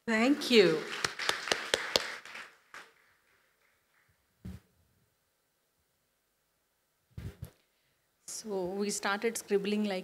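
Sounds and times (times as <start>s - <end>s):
small audience clapping: 0.2s - 4.3s.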